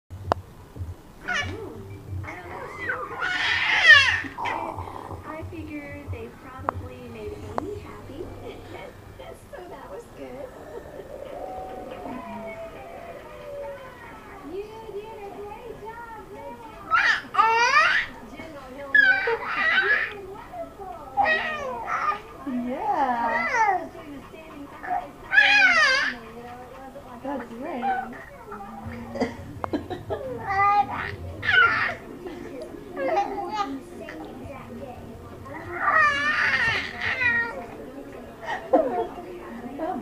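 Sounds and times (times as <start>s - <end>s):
baby cooing: 1.2s - 5.5s, 10.2s - 14.6s, 16.4s - 18.2s, 30.1s - 37.8s
baby squealing and cooing: 2.5s - 4.8s, 30.4s - 32.0s, 35.6s - 37.6s.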